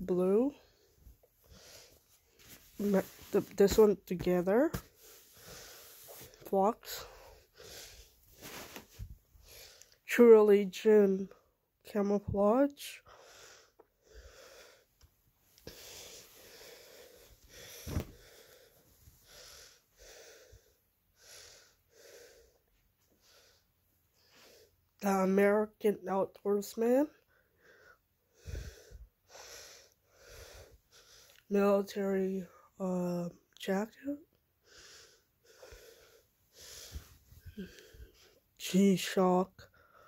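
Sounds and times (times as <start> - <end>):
person breathing heavily: 0.6 - 2.6, 4.9 - 6.4, 7.0 - 8.8, 13.0 - 14.9, 15.6 - 24.8, 27.3 - 31.4, 34.6 - 38.4.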